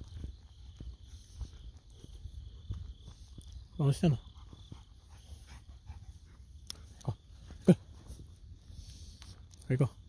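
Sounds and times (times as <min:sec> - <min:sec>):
night insects chorus: 0:00.0 - 0:10.0.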